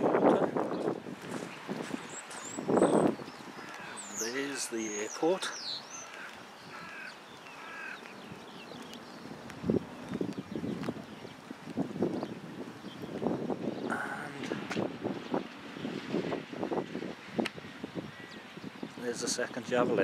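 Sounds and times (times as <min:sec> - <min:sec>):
footsteps crunching on wet gravel: 0:00.6 - 0:13.4
bird calling: 0:01.5 - 0:11.5, 0:17.2 - 0:19.4.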